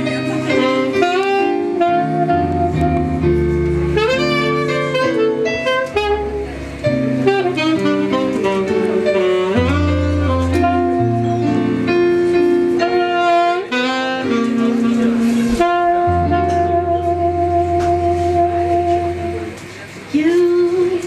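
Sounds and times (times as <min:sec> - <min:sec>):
saxophone melody: 0:00.0 - 0:19.7
jazz band accompaniment: 0:00.0 - 0:21.0.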